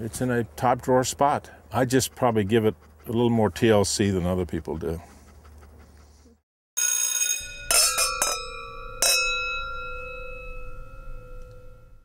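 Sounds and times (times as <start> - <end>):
metal chimes ringing: 6.8 - 12.0.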